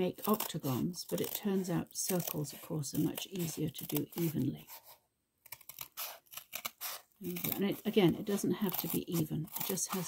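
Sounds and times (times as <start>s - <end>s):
scissors snipping cardboard: 0.0s - 10.0s.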